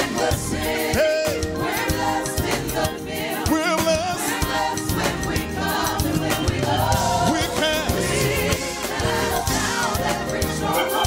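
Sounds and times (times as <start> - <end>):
band with steady beat: 0.0 - 11.0
congregation singing along: 0.0 - 11.0
praise team singing: 0.0 - 11.0.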